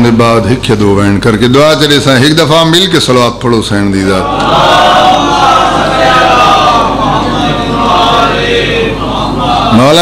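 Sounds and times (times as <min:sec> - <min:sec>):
congregation chanting in unison: 0:04.2 - 0:10.0.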